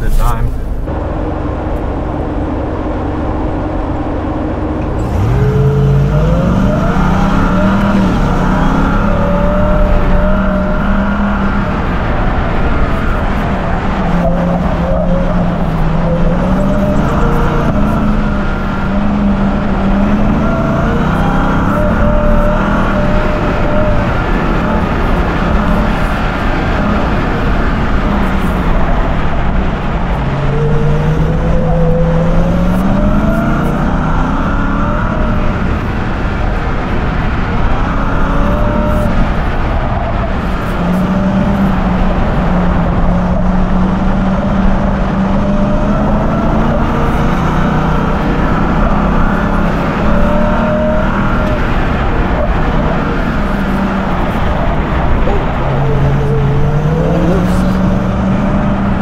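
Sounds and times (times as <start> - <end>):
truck engine revving: 0.0 - 59.0
tyre and dirt noise: 0.0 - 59.0.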